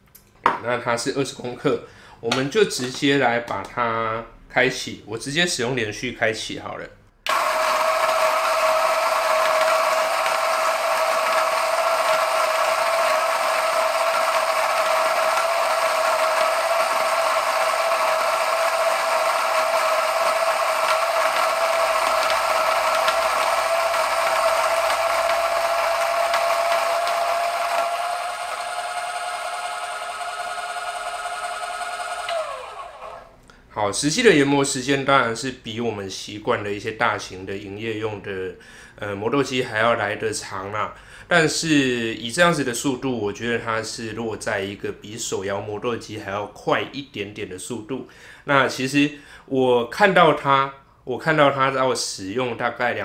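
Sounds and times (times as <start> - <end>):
motor winding down: 7.3 - 33.3
coffee grinder whining: 7.3 - 33.4.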